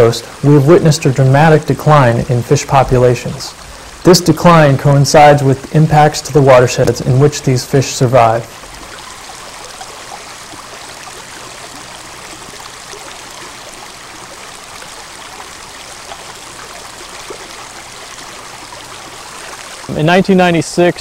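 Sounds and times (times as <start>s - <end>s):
stream water flowing: 0.0s - 21.0s.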